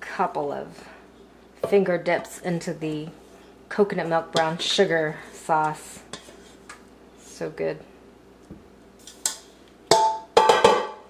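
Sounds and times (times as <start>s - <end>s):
spatula scraping dish: 3.2s - 6.8s.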